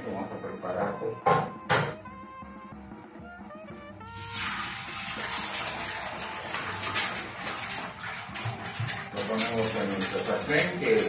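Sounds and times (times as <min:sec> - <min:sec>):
oil sizzling and spattering: 0:04.1 - 0:11.0.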